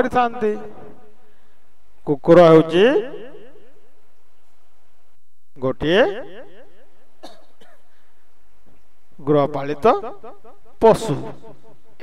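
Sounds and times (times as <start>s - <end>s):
person softly coughing: 7.2s - 8.0s.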